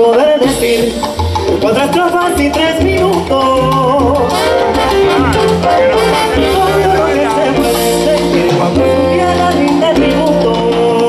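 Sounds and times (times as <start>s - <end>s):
salsa band playing live: 0.0s - 11.0s
trombones holding notes: 4.1s - 10.6s.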